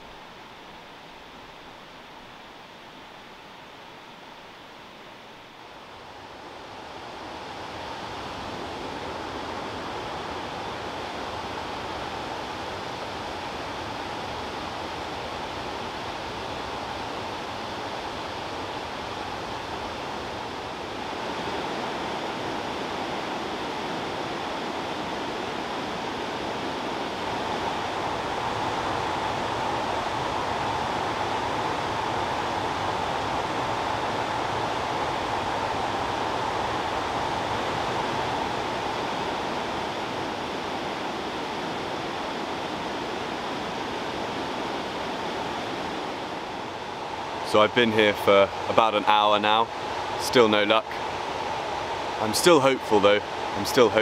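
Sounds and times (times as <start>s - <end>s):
white water rushing over rapids: 6.0s - 54.0s.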